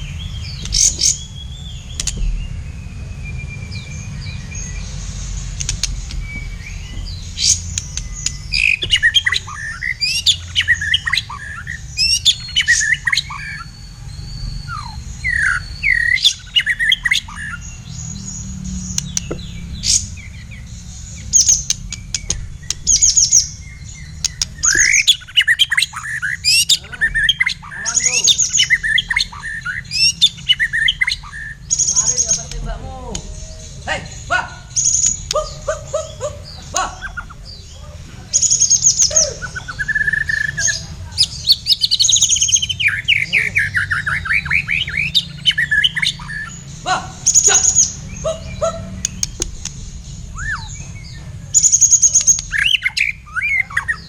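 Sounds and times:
bird singing whistles: 0:00.0 - 0:32.6, 0:38.4 - 0:54.0
steady low rumble: 0:00.0 - 0:53.5.

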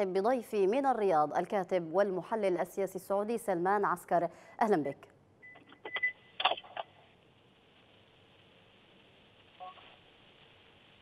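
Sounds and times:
steady hiss on the line: 0:07.4 - 0:11.0
telephone line crackling: 0:09.4 - 0:11.0.

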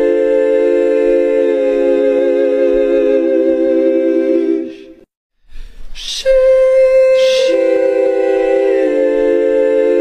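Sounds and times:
choir singing sustained chord: 0:00.0 - 0:05.0, 0:06.3 - 0:10.0.

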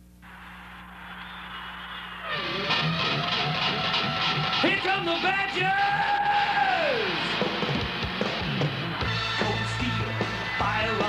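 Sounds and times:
electric guitar: 0:02.2 - 0:05.6, 0:06.2 - 0:11.0
bass guitar: 0:02.3 - 0:11.0
drum kit: 0:02.6 - 0:11.0
person singing: 0:09.4 - 0:11.0.

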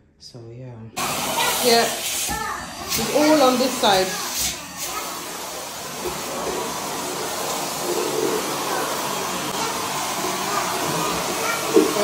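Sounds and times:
vacuum cleaner running: 0:01.0 - 0:12.0.

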